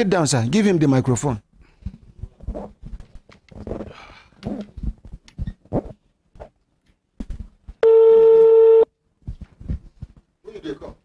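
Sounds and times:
telephone line tone: 7.8s - 8.9s.

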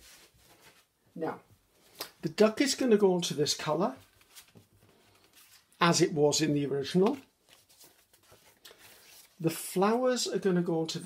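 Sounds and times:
paper rustling and tapping: 6.9s - 9.2s.

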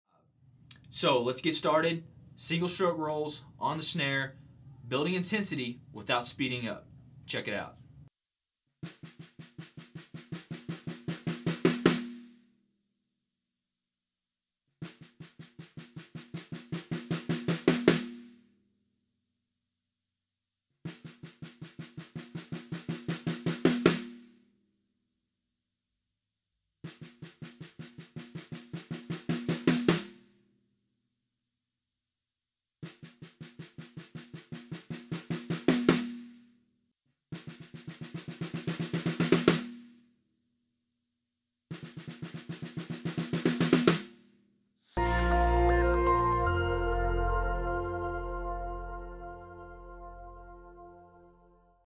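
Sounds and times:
snare drum rolls: 8.8s - 12.3s, 20.9s - 24.2s, 32.8s - 36.3s, 37.4s - 39.9s, 41.7s - 44.2s.

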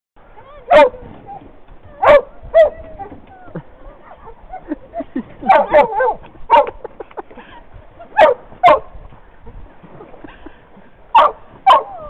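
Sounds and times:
dog barking: 0.7s - 1.0s, 2.0s - 2.7s, 5.4s - 6.8s, 8.2s - 8.9s, 11.1s - 12.0s.

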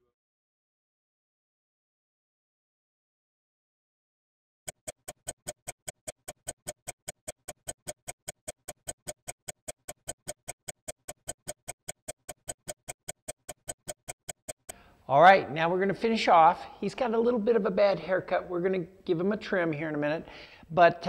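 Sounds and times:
clock ticking rapidly: 4.7s - 14.8s.

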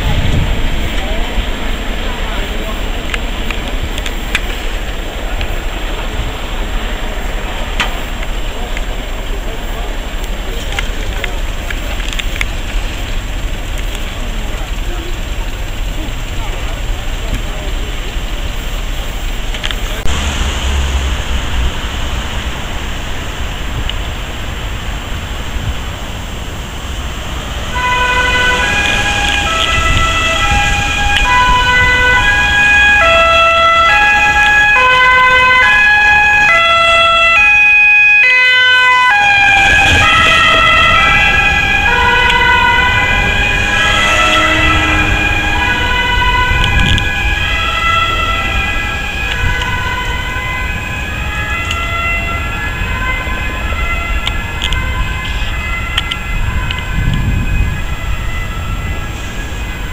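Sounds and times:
traffic rumble: 0.0s - 59.9s
ambulance two-tone siren: 20.0s - 59.9s.

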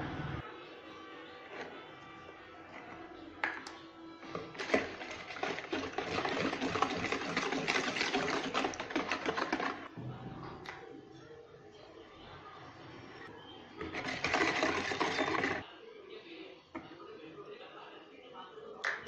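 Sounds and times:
wire whisk scraping plastic bowl: 4.3s - 9.9s, 13.8s - 15.6s.

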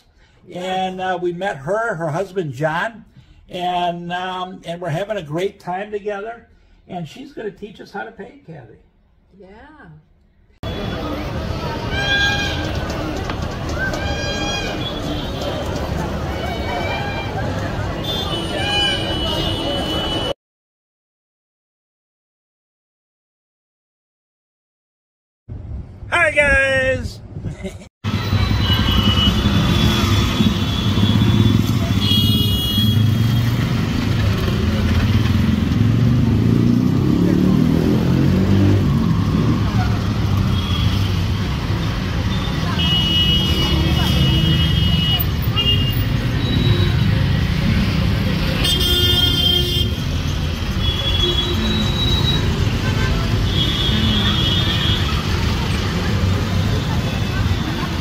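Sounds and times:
loud harsh horn blast: 10.6s - 12.8s, 28.1s - 33.5s, 42.3s - 47.4s, 48.5s - 50.1s
vehicle horns honking: 10.6s - 13.0s, 13.9s - 15.7s, 16.4s - 20.4s, 28.1s - 33.6s, 40.4s - 41.3s, 42.3s - 47.4s, 48.4s - 55.4s
traffic engines running: 10.6s - 20.4s, 27.0s - 58.0s.

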